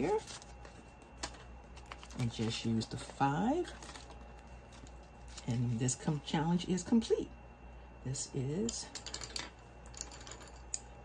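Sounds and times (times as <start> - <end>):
paper bills rustling: 0.0 - 6.3.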